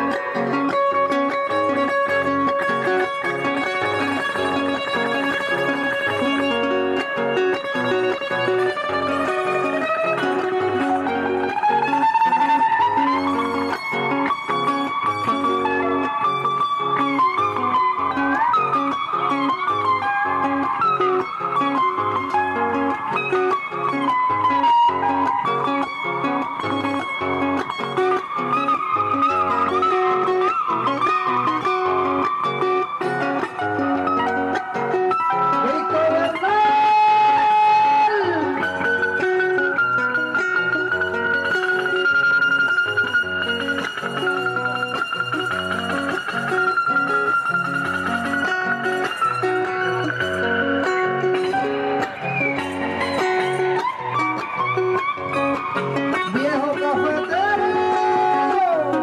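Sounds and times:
plucked guitar bass notes: 0.0s - 59.0s
slide guitar melody: 0.0s - 59.0s.

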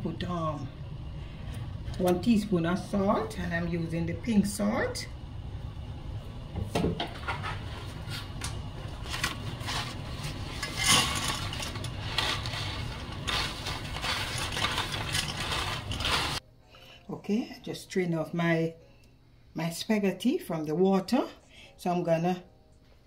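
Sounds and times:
water boiling in a pot: 0.0s - 16.4s.

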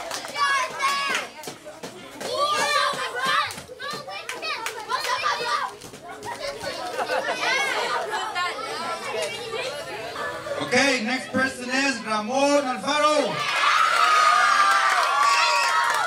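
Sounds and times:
children chattering and calling out: 0.0s - 16.0s.

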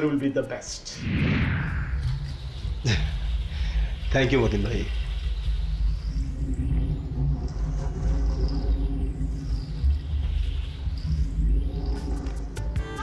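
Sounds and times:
slow sweeping swish: 0.9s - 2.9s
deep rumbling drone: 1.0s - 13.0s.

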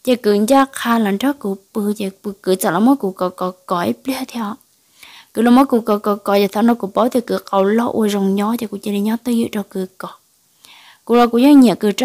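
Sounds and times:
person narrating a story: 0.0s - 4.6s, 5.3s - 10.2s, 11.1s - 12.0s.

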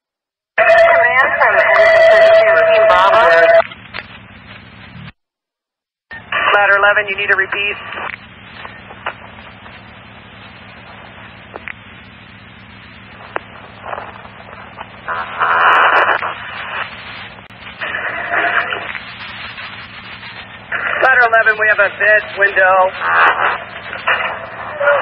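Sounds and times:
loud static bursts: 0.6s - 5.2s, 6.1s - 25.0s
radio static hiss: 0.6s - 5.2s, 6.1s - 25.0s
steady hum: 0.8s - 5.2s, 6.1s - 25.0s.

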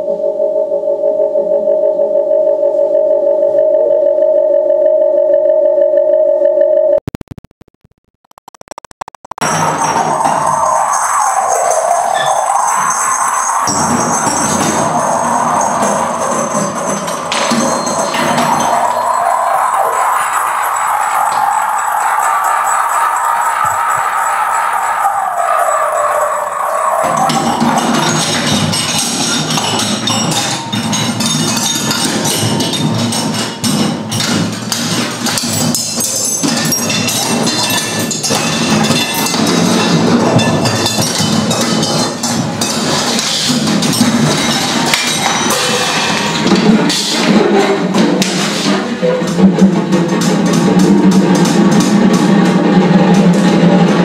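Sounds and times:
clatter of metallic and wooden strikes: 27.0s - 54.0s.

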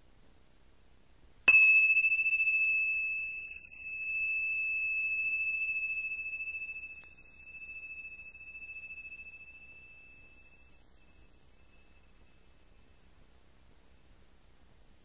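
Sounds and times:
high-pitched bell chime: 1.5s - 13.0s.

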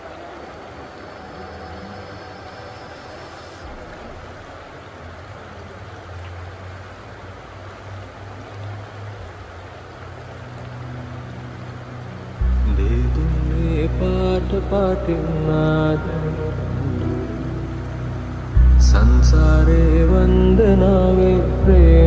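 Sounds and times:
river running over stones: 0.0s - 22.0s.

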